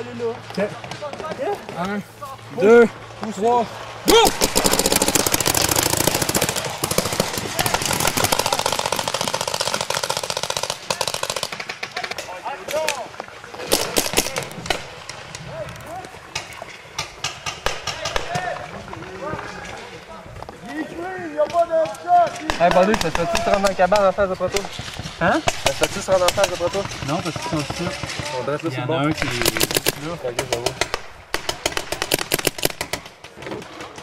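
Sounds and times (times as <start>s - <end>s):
paintball markers firing: 4.1s - 13.0s, 13.6s - 15.2s, 21.4s - 28.4s, 29.2s - 33.4s.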